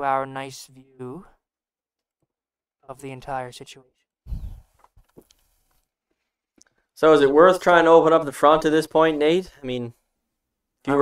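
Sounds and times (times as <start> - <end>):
breath into microphone: 4.3 - 4.8.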